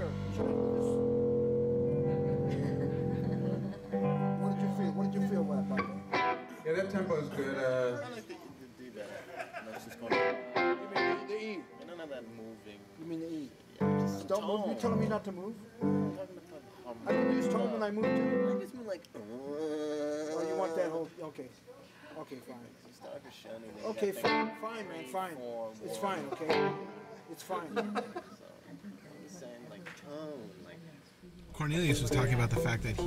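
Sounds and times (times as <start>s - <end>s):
guitar chords strongly struck: 0.0s - 7.4s, 17.1s - 18.6s
guitar plucked notes: 0.0s - 7.4s, 10.1s - 11.4s, 13.8s - 15.2s, 15.8s - 16.2s, 17.1s - 18.7s, 24.2s - 24.8s, 26.5s - 27.2s, 31.9s - 33.0s
person's voice: 31.6s - 33.0s.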